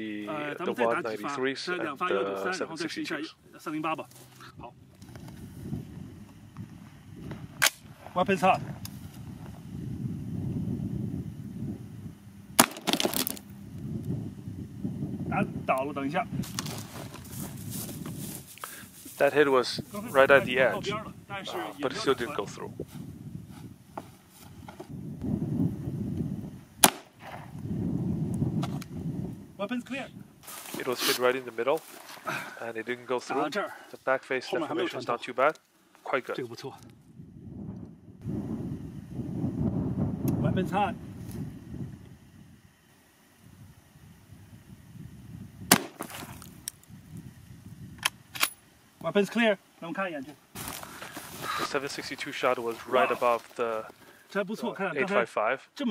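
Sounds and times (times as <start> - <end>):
wind buffeting microphone: 4.5 - 12.6, 13.4 - 30.4, 36.7 - 42.7, 43.4 - 48.4
rifle shot with echo: 26.8 - 27.4.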